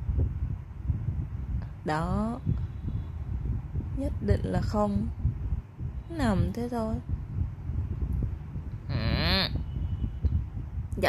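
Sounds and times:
steady low rumble: 0.0s - 11.0s
wordless vocal call: 8.9s - 9.6s.

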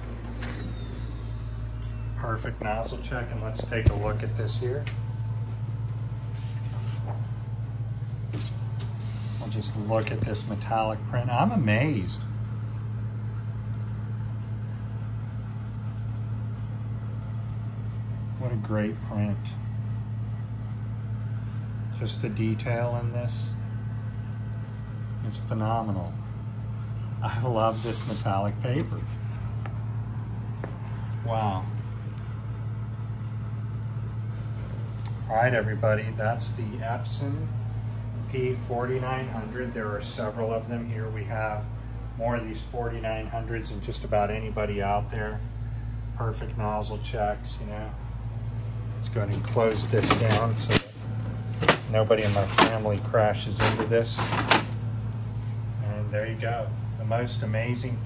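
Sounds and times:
low machine hum: 0.0s - 58.0s.

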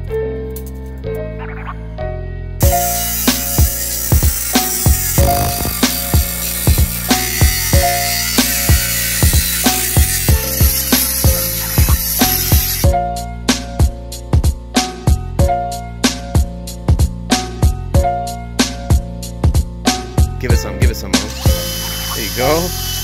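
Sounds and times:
angle grinder cutting metal: 2.6s - 12.9s, 21.2s - 23.0s
music with drum beat: 2.6s - 22.7s.

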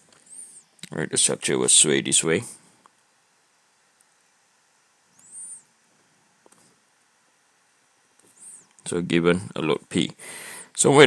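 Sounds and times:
stylus squeaking on tablet screen: 5.1s - 5.7s, 8.2s - 8.7s.

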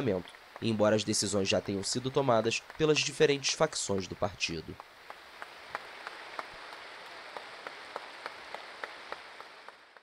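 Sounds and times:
large audience clapping: 0.0s - 10.0s.

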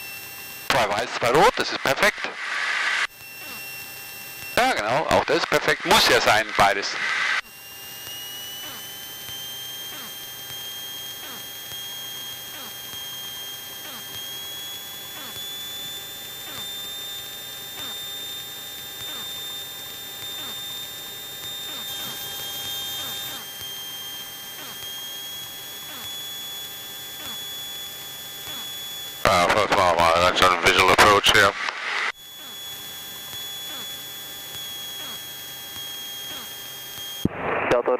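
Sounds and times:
high-pitched electrical whine: 0.0s - 37.9s.

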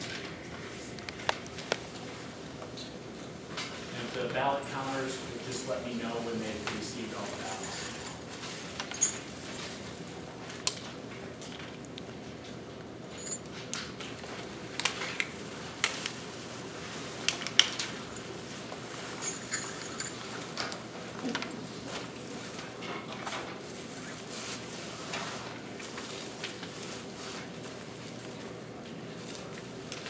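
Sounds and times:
low background hum: 0.0s - 30.0s.

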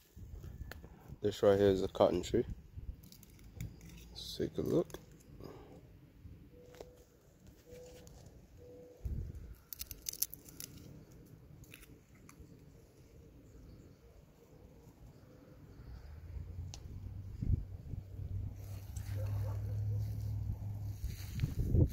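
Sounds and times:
dry plant crackling: 2.9s - 5.6s, 9.0s - 12.6s, 18.4s - 21.9s
low rumble: 16.1s - 21.9s.

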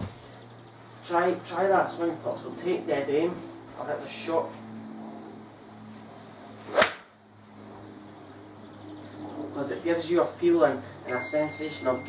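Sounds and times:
golf club striking ball: 6.7s - 7.0s.

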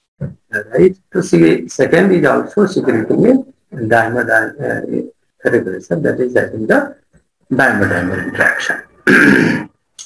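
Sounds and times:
man speaking: 0.2s - 9.1s
man clearing throat: 9.1s - 9.8s.

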